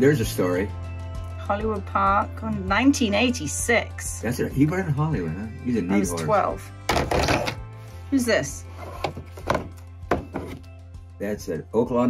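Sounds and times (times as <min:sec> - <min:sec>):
background music: 0:00.0 - 0:12.0
wooden frames knocking on table: 0:06.9 - 0:07.6, 0:08.8 - 0:10.7.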